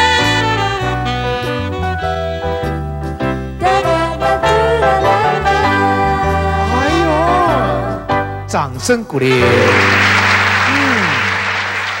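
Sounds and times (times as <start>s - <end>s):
studio audience applauding: 9.2s - 12.0s
low note sliding downward: 9.4s - 11.5s.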